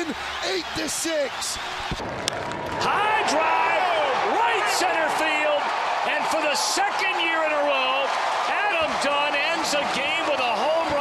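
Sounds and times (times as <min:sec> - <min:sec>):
ballpark crowd noise: 0:00.0 - 0:11.0.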